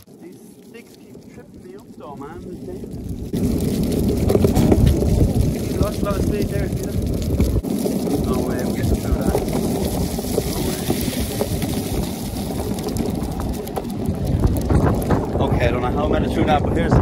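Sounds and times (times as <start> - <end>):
longboard wheels rolling on asphalt: 0.0 - 17.0
wind buffeting microphone: 0.0 - 17.0.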